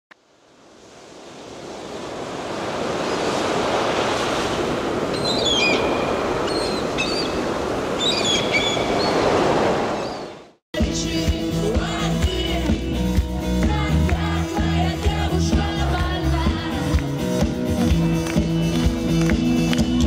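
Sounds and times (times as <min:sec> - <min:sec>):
sea surf washing: 0:00.3 - 0:10.6.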